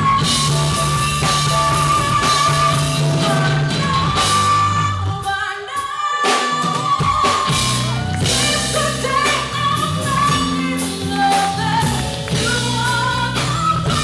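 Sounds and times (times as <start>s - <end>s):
live soul band playing: 0.0s - 14.0s
woman singing: 0.0s - 14.0s.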